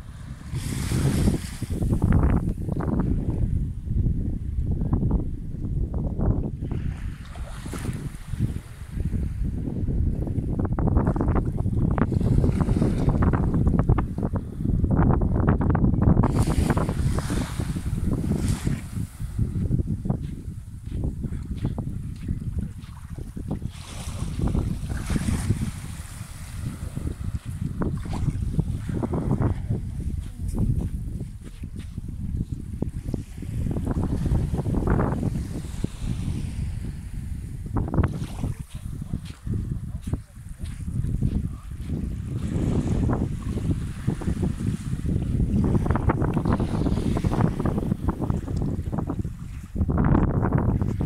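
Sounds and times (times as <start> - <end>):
small waves washing up sand: 0.0 - 2.2, 6.6 - 9.1, 11.9 - 13.8, 16.2 - 50.0
wind buffeting microphone: 0.0 - 51.0.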